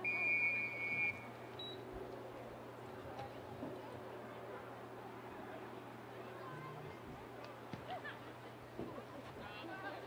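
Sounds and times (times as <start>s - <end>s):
referee's whistle blast: 0.0s - 1.3s.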